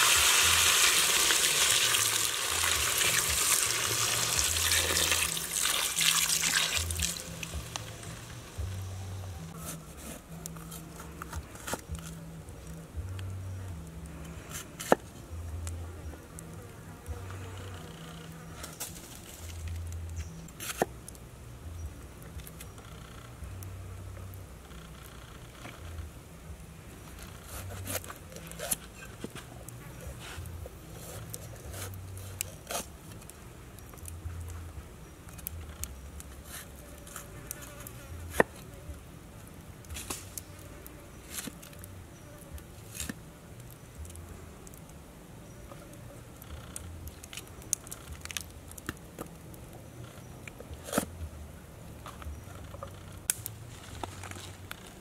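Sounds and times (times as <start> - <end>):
water sizzling in hot pan: 0.0 - 8.5.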